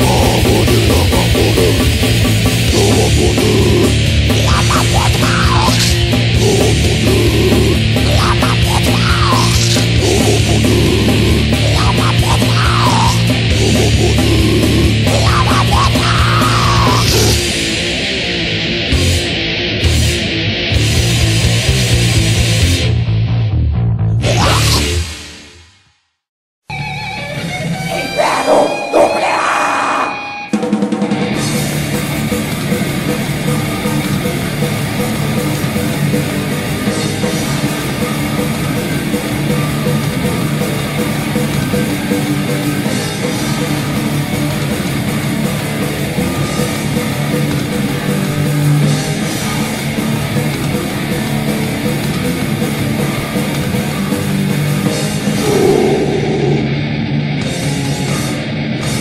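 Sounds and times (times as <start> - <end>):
band playing grindcore: 0.0 - 22.9, 27.6 - 58.4.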